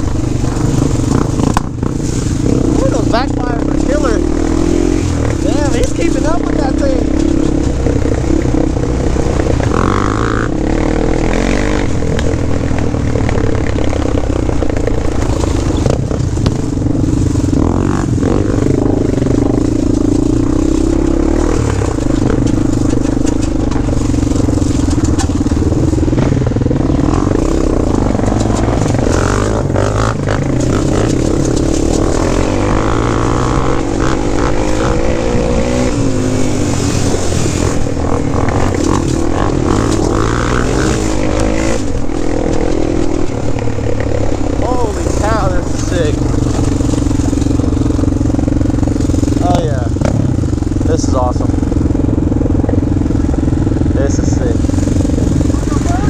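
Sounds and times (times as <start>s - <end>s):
quad bike engine running: 0.0s - 56.0s.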